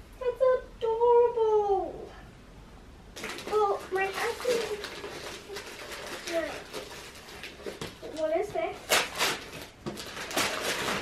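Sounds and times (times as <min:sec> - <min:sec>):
wrapping paper tearing and rustling: 0:03.2 - 0:11.0.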